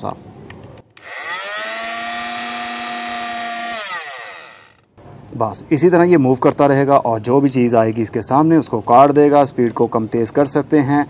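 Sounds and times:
oscillating multi-tool whine: 1.0s - 4.9s.

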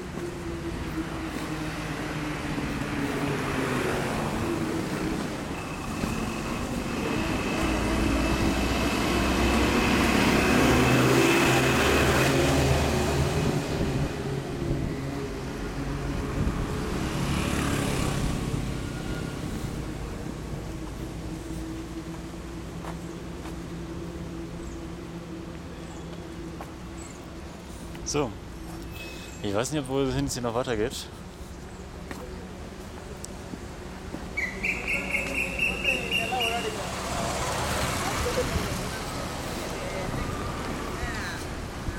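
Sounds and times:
cars driving past: 0.0s - 41.9s.

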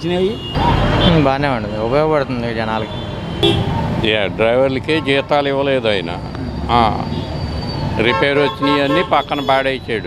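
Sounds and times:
street traffic noise: 0.0s - 10.0s
man speaking into microphone: 8.0s - 10.0s.

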